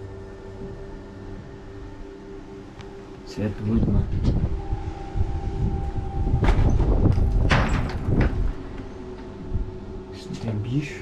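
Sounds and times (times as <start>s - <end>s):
wind buffeting microphone: 3.4s - 10.1s.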